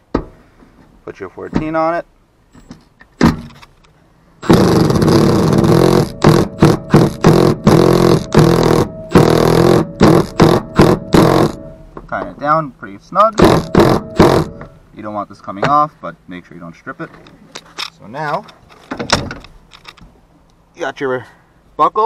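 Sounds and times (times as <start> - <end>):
impact gun hammering: 4.4 - 12.0, 13.4 - 14.8.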